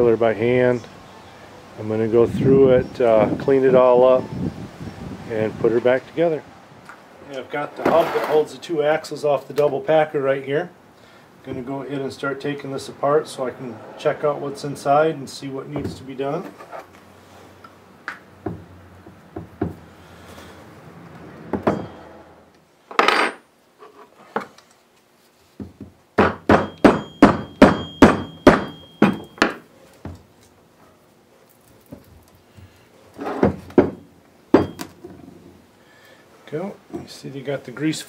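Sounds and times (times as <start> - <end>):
mallet striking metal hub: 21.6 - 22.0, 26.2 - 29.6, 34.6 - 34.9.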